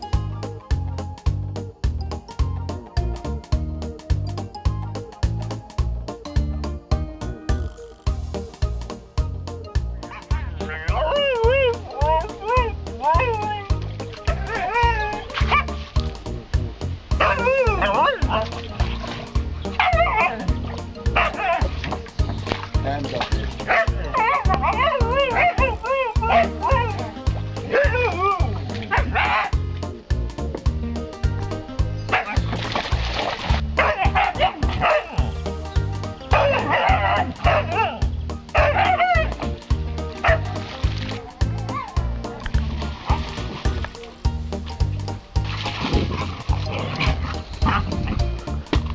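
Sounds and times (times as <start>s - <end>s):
background music with beat: 0.0s - 48.9s
dogs barking and yipping: 10.0s - 16.2s, 17.1s - 22.7s, 23.4s - 30.0s, 32.0s - 44.1s, 44.7s - 48.9s
dog howl-like whining: 10.9s - 15.7s, 17.2s - 18.4s, 19.8s - 20.5s, 24.0s - 28.5s.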